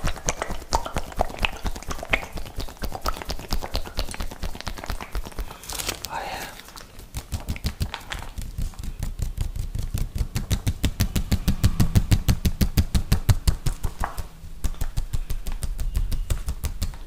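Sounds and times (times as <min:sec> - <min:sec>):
fingertips tapping plastic pouch: 0:00.0 - 0:11.4, 0:12.2 - 0:17.0.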